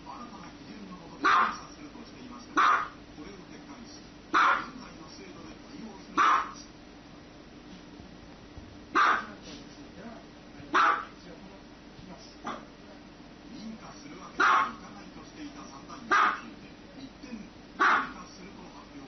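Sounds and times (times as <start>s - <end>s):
small dog barking: 1.2s - 1.6s, 2.6s - 3.0s, 4.3s - 4.8s, 6.2s - 6.7s, 8.9s - 9.4s, 10.7s - 11.2s, 12.4s - 12.8s, 14.4s - 14.8s, 16.1s - 16.5s, 17.8s - 18.2s.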